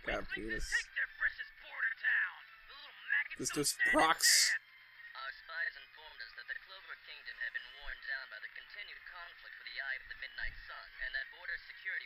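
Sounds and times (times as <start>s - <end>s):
muffled person talking: 0.0s - 0.9s, 3.4s - 4.6s.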